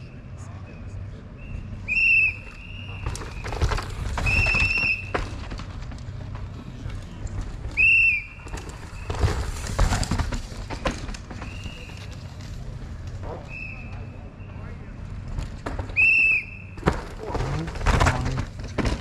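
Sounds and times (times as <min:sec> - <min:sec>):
sharp whistle blasts: 0:01.4 - 0:03.1, 0:04.2 - 0:05.2, 0:07.8 - 0:08.4, 0:13.5 - 0:14.6, 0:16.0 - 0:16.8
bike tyres clattering over rocks: 0:02.1 - 0:14.0, 0:15.2 - 0:19.0.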